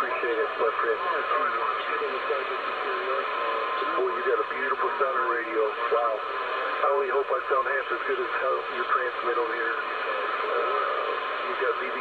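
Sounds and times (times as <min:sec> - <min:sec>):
radio band noise hiss: 0:00.0 - 0:12.0
voice over radio speaker: 0:00.0 - 0:12.0.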